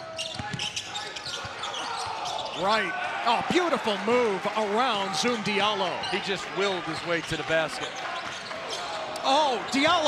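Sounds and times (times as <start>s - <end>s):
murmur of indoor crowd: 0.0s - 10.0s.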